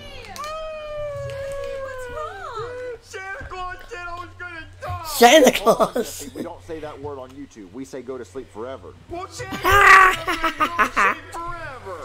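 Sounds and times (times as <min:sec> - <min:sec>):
high-pitched cartoon crying wail: 0:09.5 - 0:11.2.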